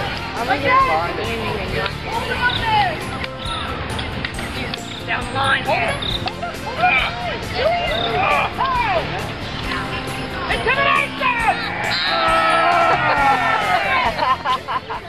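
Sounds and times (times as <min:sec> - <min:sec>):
children shouting: 0:11.0 - 0:14.2.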